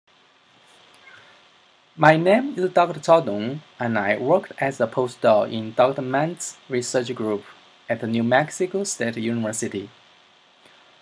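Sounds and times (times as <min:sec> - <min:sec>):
low even recording hiss: 0:00.1 - 0:11.0.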